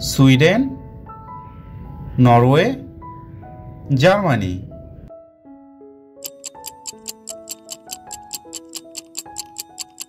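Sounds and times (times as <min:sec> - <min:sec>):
clock ticking: 0:06.2 - 0:10.0.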